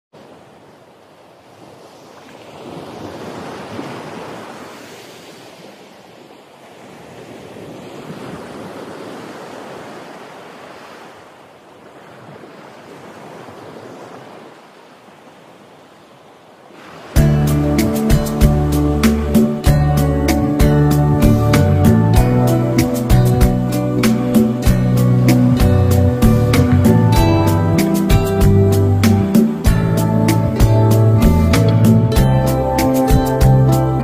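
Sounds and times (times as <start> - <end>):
sea waves breaking on beach: 0.2 - 31.7.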